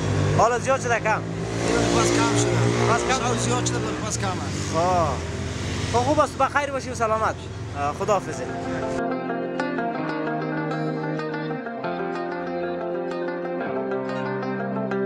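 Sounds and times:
traffic passing: 0:00.0 - 0:09.0
man talking: 0:00.4 - 0:05.2, 0:05.9 - 0:09.0.

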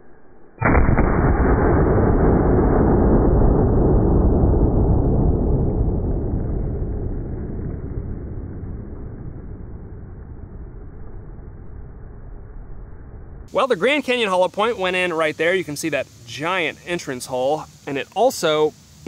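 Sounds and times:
slowed-down gunshot boom: 0:00.6 - 0:13.5.

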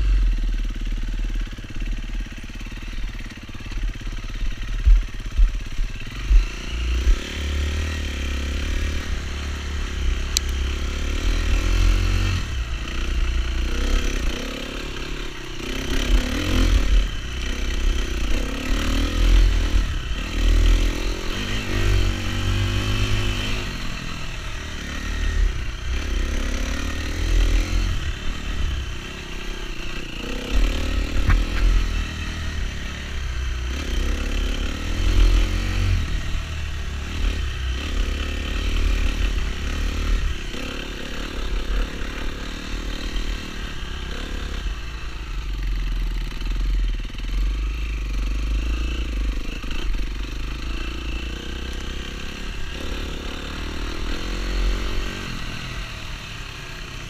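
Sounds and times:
dirt bike engine revving: 0:00.0 - 0:57.0.

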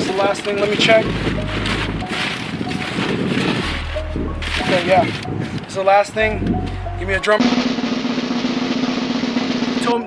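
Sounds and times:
snare drum roll: 0:07.4 - 0:10.0.

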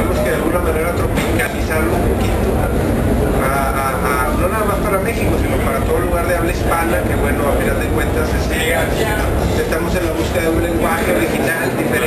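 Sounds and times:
men talking: 0:00.0 - 0:12.0
steady low rumble: 0:00.0 - 0:12.0.

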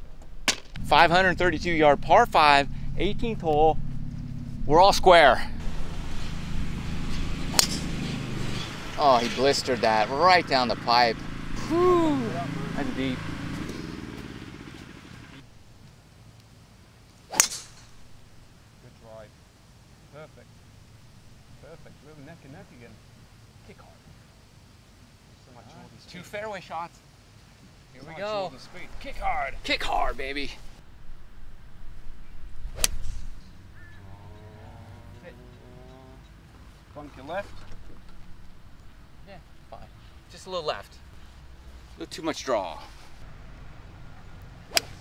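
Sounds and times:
outdoor background noise: 0:00.0 - 0:45.0
golf club striking ball: 0:07.0 - 0:10.0, 0:17.3 - 0:18.2, 0:32.7 - 0:33.5, 0:44.7 - 0:45.0
person calling out: 0:11.6 - 0:12.8.

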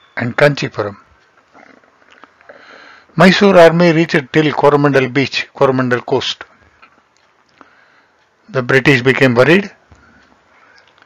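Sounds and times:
soft intake of breath: 0:02.4 - 0:03.2, 0:07.6 - 0:08.2.

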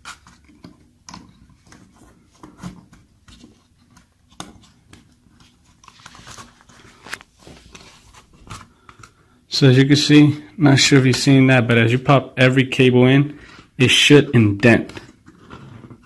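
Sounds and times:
handling rustle: 0:00.0 - 0:09.1.

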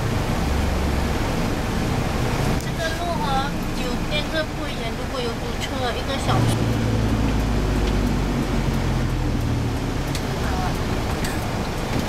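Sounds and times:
street traffic: 0:00.0 - 0:12.0
vehicle engine humming: 0:00.0 - 0:12.0.

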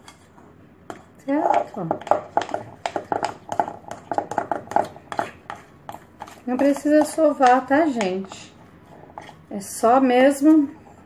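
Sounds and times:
utensil stirring dough in glass bowl: 0:00.0 - 0:11.0.

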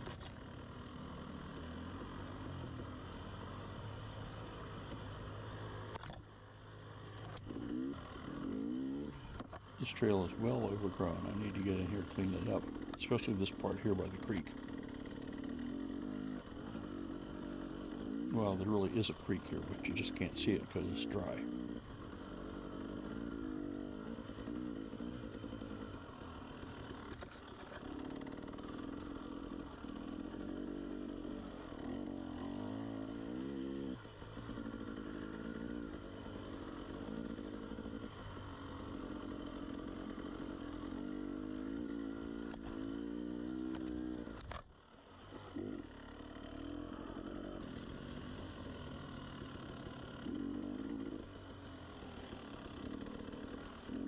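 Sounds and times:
two-stroke motorcycle engine revving: 0:00.0 - 0:54.0.

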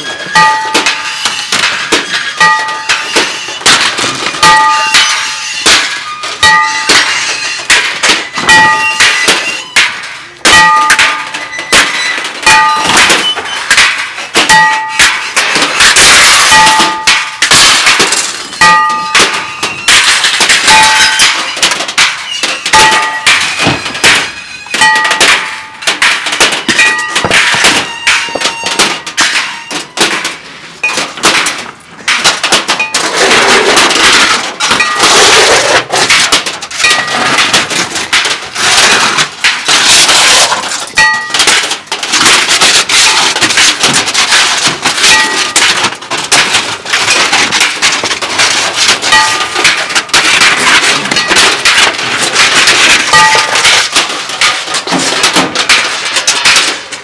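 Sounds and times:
metal clangs and crashes: 0:00.0 - 0:57.0
ringing metal piece struck: 0:00.2 - 0:01.5, 0:02.3 - 0:03.6, 0:04.4 - 0:17.7, 0:18.6 - 0:30.0, 0:49.1 - 0:49.8.

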